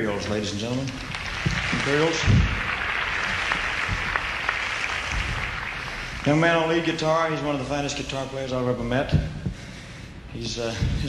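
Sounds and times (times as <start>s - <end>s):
audience applauding: 0.7s - 7.5s.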